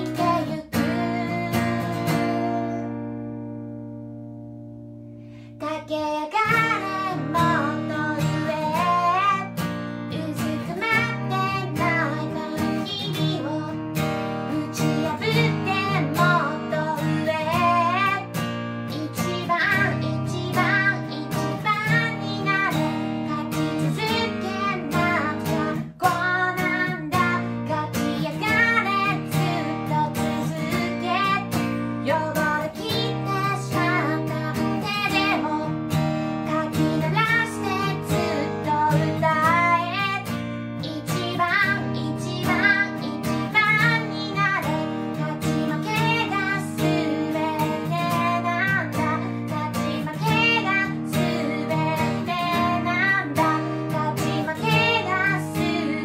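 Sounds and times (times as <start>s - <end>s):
woman singing pop melody: 0.0s - 3.3s, 5.4s - 56.0s
strummed acoustic guitar: 0.0s - 56.0s.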